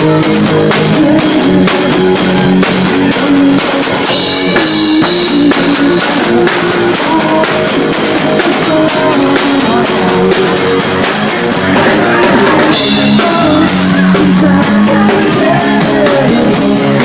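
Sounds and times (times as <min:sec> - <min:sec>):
drum kit: 0:00.0 - 0:17.0
electric guitar: 0:00.0 - 0:17.0
live rock band: 0:00.0 - 0:17.0.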